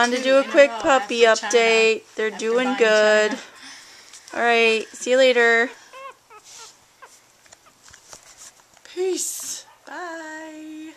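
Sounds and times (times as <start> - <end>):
puppies squeaking: 5.6 - 8.0.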